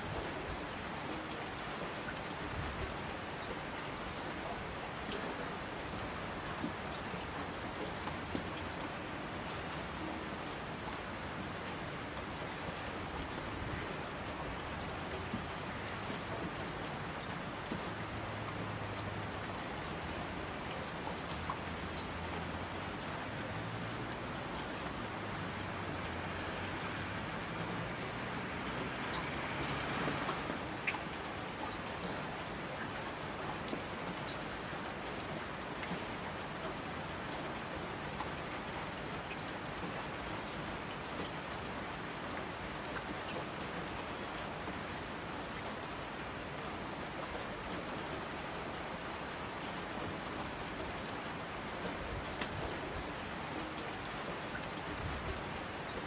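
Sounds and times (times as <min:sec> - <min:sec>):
rain drop ticks: 0:00.0 - 0:02.5, 0:06.5 - 0:10.4, 0:14.6 - 0:45.8, 0:46.7 - 0:48.7, 0:49.3 - 0:56.0
steady rain falling: 0:00.0 - 0:56.0.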